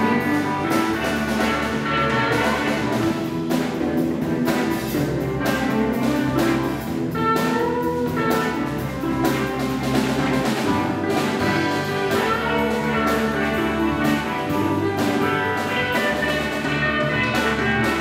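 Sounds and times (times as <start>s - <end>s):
bass guitar: 0.0s - 18.0s
drum kit with cymbals: 0.0s - 18.0s
electric guitars: 0.0s - 18.0s.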